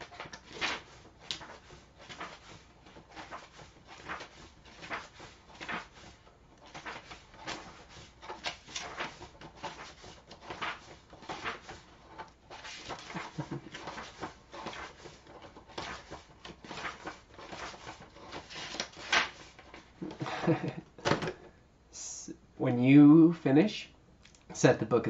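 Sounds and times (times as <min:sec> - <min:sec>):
book pages flipping: 0:00.0 - 0:21.4.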